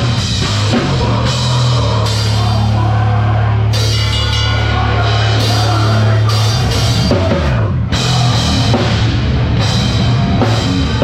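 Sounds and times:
drums: 0.0 - 11.0.

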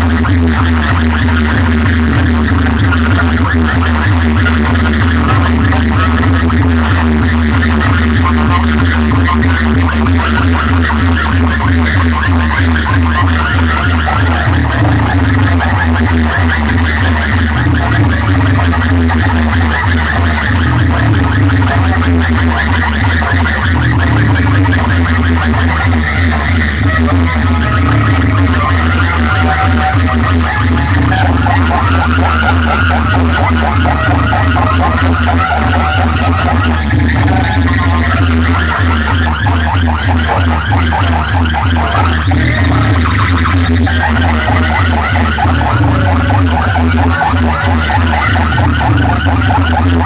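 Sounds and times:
loud bass-heavy dance music: 0.0 - 50.0.

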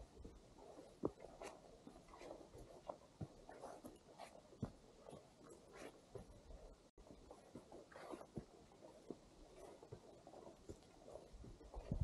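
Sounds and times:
footsteps on dirt path: 0.0 - 12.0
clothing and backpack rustle: 0.6 - 12.0.

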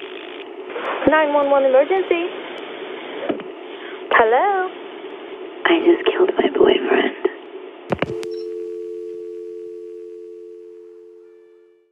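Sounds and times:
telephone line clicks: 7.9 - 9.9
two-tone telephone dial tone: 7.9 - 11.8.

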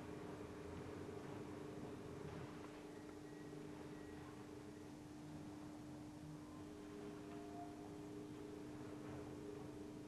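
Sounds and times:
faint tone: 2.9 - 5.4, 6.2 - 9.7.

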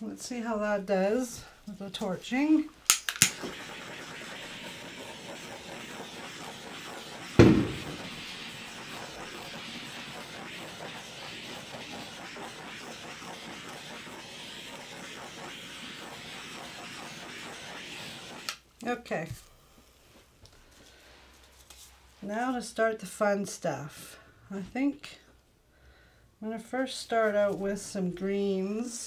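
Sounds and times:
torch lighting click: 2.9 - 3.4
butane torch hissing: 3.1 - 18.6
loud thump: 7.4 - 8.2.

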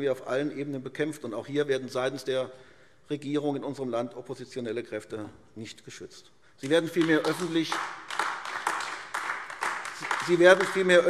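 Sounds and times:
hands clapping: 6.6 - 11.0.

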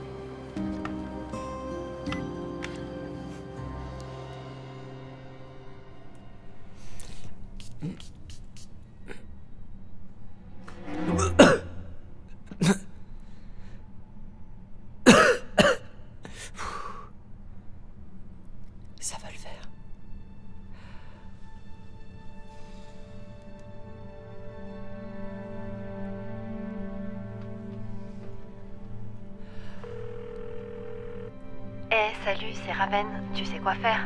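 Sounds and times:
soft background music: 0.0 - 16.6, 17.2 - 34.0
man clearing his throat: 11.2 - 11.7, 12.5 - 13.0, 15.1 - 15.9
telephone ringback tone: 29.8 - 31.3.

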